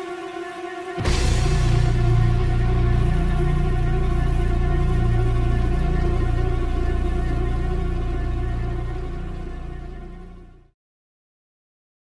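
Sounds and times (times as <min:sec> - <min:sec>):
droning industrial doom music: 0:00.0 - 0:10.7.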